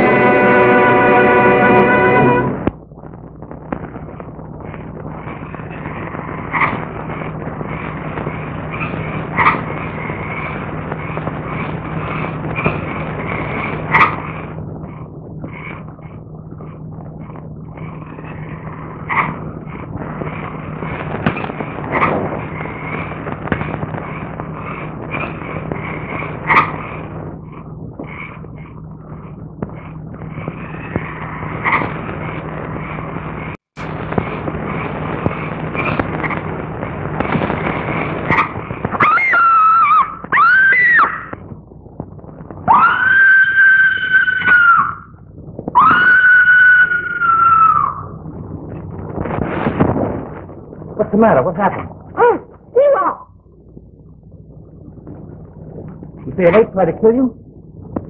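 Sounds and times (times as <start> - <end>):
film soundtrack hiss: 0.0 - 58.0
low hum: 0.0 - 58.0
long high screams: 39.0 - 41.3, 42.7 - 45.2, 45.8 - 48.1.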